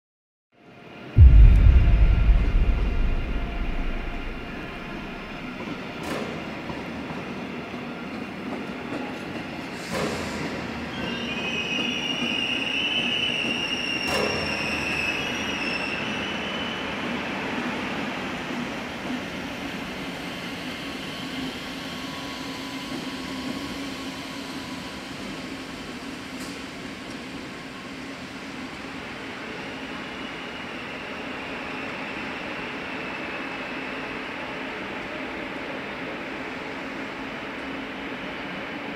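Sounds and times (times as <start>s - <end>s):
deep boom: 1.2s - 5.6s
train wheels squealing: 8.8s - 18.5s, 27.8s - 38.9s.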